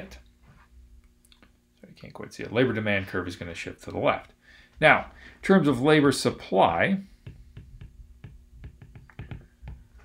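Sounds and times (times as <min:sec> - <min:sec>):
stylus tapping on glass screen: 0:07.2 - 0:10.0.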